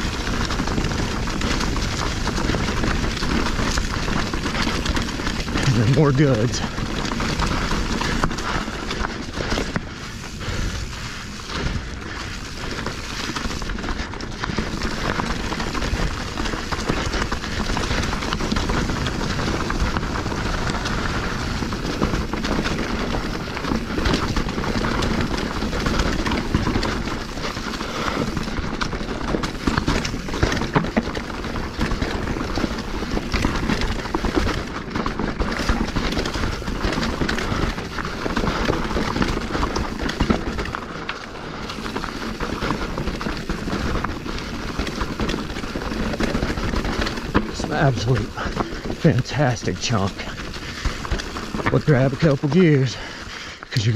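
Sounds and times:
bike knocks and rattles: 0.0 - 53.1
tyres crunching over leaves and stones: 0.0 - 53.9.

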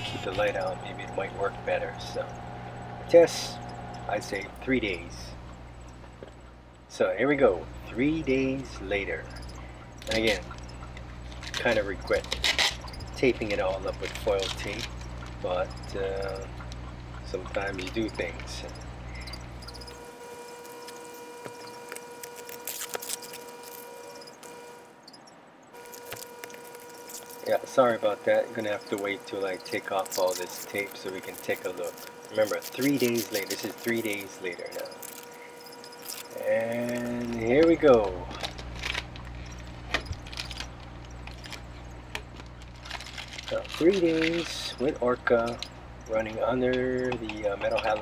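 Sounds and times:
sharp clicks: 0.0 - 48.0
steady electrical hum: 0.0 - 48.0
foil tape crackling and crinkling: 10.0 - 18.7, 19.8 - 24.8, 25.8 - 46.2.

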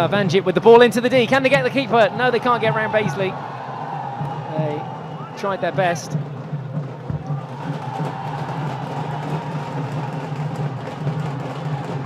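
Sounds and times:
crowd noise: 0.0 - 12.0
music: 0.0 - 12.0
drumming: 0.7 - 12.0.

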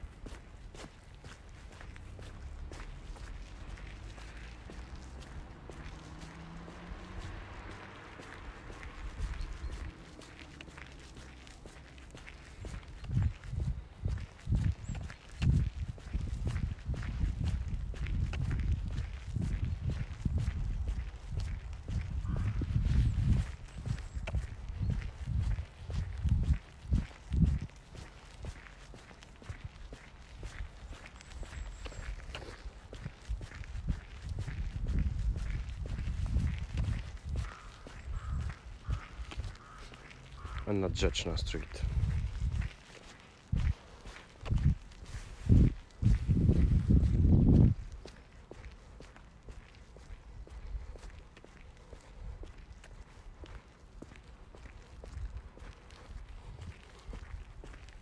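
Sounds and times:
footsteps on pavement: 0.0 - 58.0.

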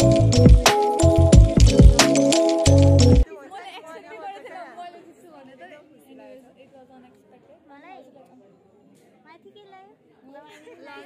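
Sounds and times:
young people chattering: 3.2 - 11.0.

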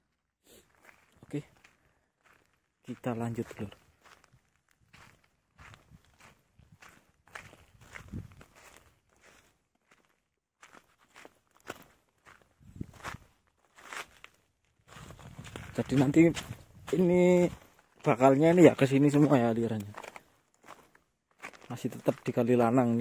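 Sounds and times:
footsteps on gravel: 0.7 - 23.0.

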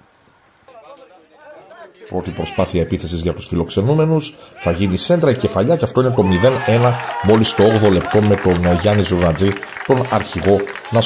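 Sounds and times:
distant voices calling out: 0.6 - 11.0.

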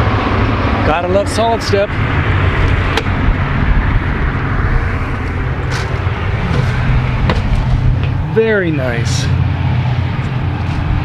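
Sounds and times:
highway traffic rumble: 0.0 - 11.0
footsteps on metal steps: 5.6 - 8.2.

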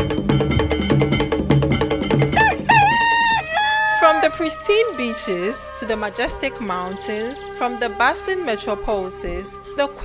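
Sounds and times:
music with percussion beat: 0.0 - 3.5
rooster crowing: 2.4 - 4.3.

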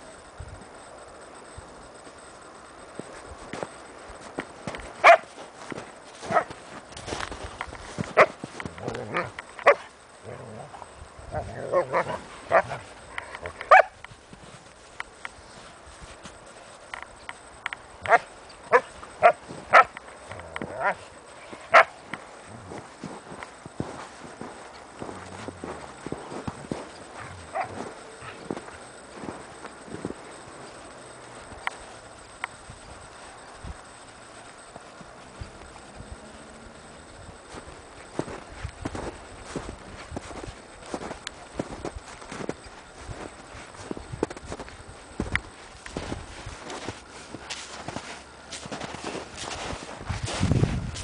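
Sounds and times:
horse hooves in snow: 2.9 - 51.0
dog barking: 5.0 - 5.3, 13.7 - 13.9.

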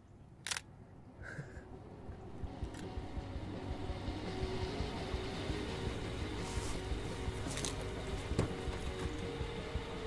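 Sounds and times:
car engine approaching: 1.6 - 10.0.

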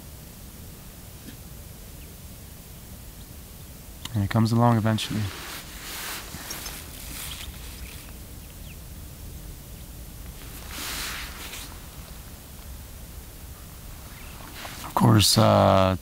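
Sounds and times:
steady low rumble: 0.0 - 16.0
soft rushing swell: 4.5 - 15.5.

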